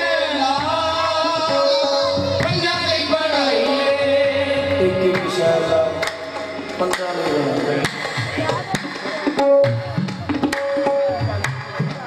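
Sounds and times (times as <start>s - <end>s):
sung vocals: 0.0s - 6.8s
harmonium: 0.0s - 12.0s
tabla drumming: 0.0s - 12.0s.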